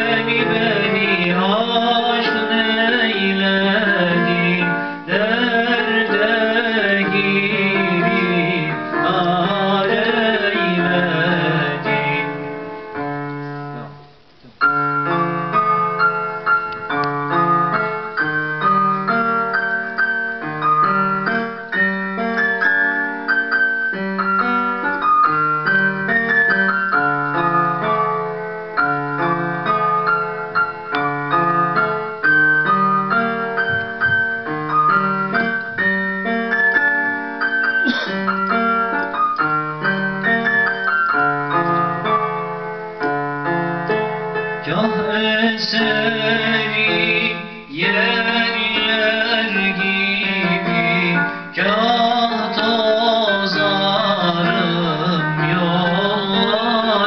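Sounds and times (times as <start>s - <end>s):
person singing: 0.0s - 12.5s, 44.6s - 57.0s
electronic keyboard piano melody: 0.0s - 57.0s.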